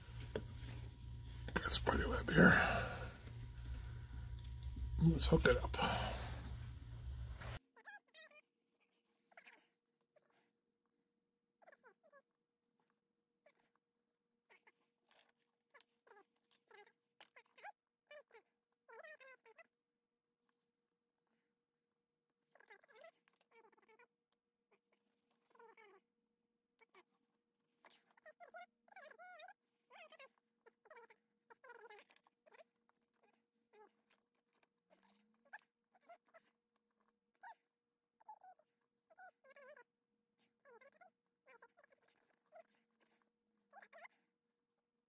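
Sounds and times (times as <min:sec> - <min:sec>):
faint steady hum: 0:00.0 - 0:07.6.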